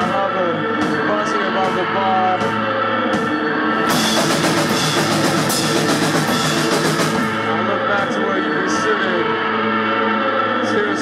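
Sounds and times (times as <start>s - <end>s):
drum kit pounding: 0.0s - 8.2s.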